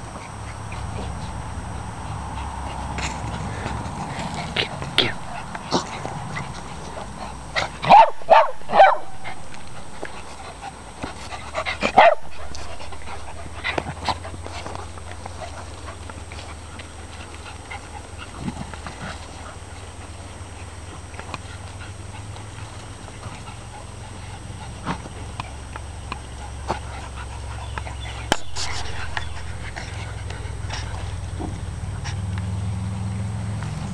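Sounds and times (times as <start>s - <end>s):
dogs playing: 0.0s - 33.9s
small dogs barking: 0.3s - 32.3s.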